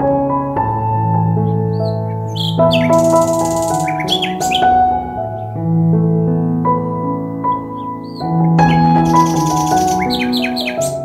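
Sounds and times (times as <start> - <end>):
gentle piano music: 0.0 - 11.0
quick bird calls: 1.7 - 4.7, 7.8 - 11.0.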